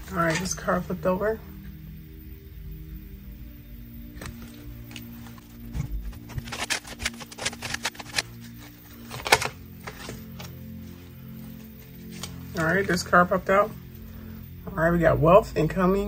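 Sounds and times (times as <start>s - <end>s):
soft background music: 0.0s - 16.0s.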